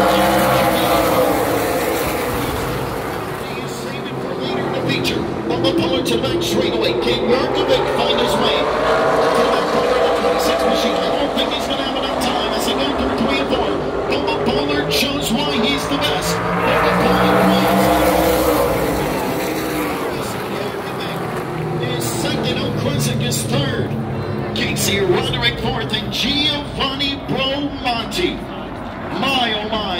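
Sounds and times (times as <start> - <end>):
race cars passing at speed: 0.0 - 29.9.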